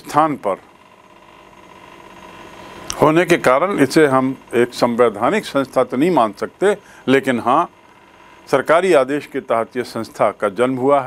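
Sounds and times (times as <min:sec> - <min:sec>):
faint steady hum with held tones: 0:00.0 - 0:11.0.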